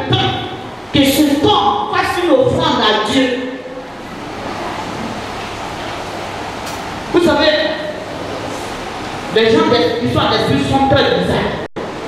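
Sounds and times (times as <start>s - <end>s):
steady rushing noise: 3.6s - 12.0s.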